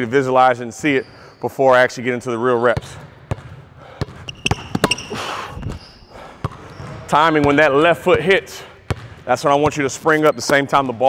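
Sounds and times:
basketball bouncing on hardwood floor: 0:02.8 - 0:05.8, 0:06.4 - 0:08.3, 0:08.9 - 0:09.8.

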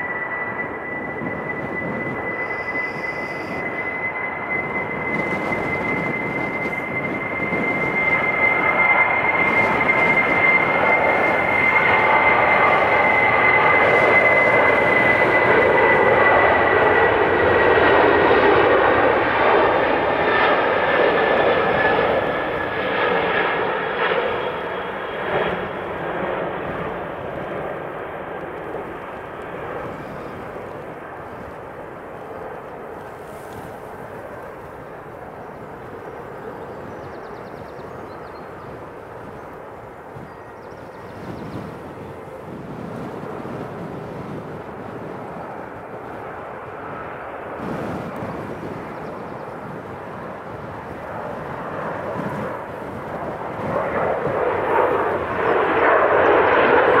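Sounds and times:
high jet fan whine: 0:00.0 - 0:57.0
jet engines at take-off power: 0:00.0 - 0:57.0.

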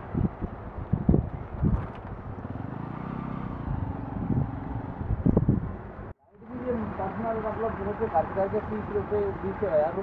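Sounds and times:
wind buffeting microphone: 0:00.0 - 0:06.2
faint vehicle engine hum: 0:00.0 - 0:10.0.

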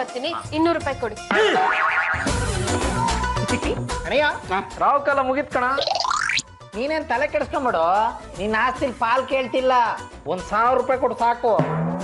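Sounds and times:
background music with heavy bass: 0:01.0 - 0:04.2
cartoon boing: 0:01.5 - 0:02.5, 0:05.8 - 0:06.4.

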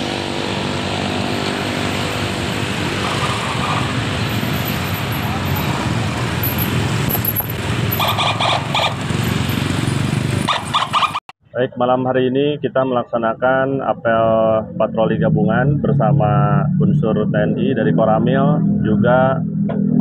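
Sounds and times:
motorcycle engines passing: 0:00.0 - 0:11.2, 0:14.1 - 0:20.0
voices: 0:11.6 - 0:19.4.

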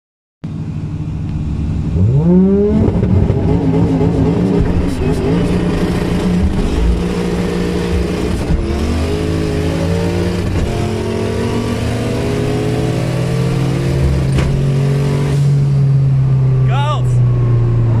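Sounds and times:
car engine at full throttle: 0:00.4 - 0:18.0.

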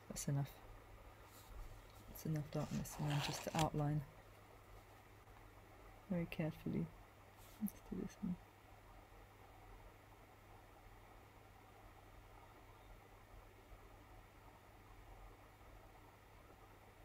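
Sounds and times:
faint low hum: 0:00.0 - 0:17.0.

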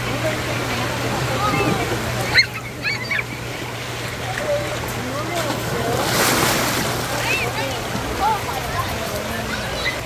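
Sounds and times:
water rushing into splash pool: 0:00.0 - 0:10.0
distant children's voices: 0:00.2 - 0:10.0
rider splashing out of slide: 0:05.3 - 0:07.5.

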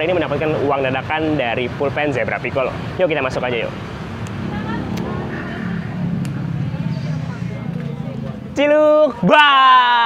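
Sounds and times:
vehicle engine rumbling: 0:00.0 - 0:09.3
faint voices: 0:04.4 - 0:10.0.

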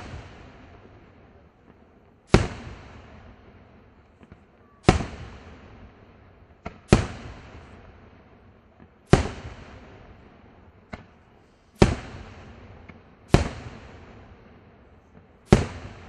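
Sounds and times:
smaller firework report: 0:00.0 - 0:16.0
firework shells booming: 0:06.6 - 0:07.9, 0:15.1 - 0:16.0.

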